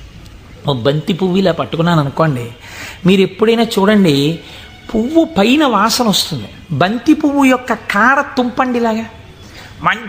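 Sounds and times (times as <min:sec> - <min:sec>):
man speaking: 0:00.6 - 0:09.2, 0:09.8 - 0:10.0.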